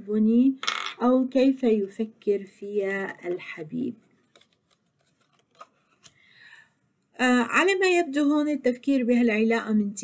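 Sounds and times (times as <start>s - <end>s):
cards clicking and sliding: 4.2s - 6.2s.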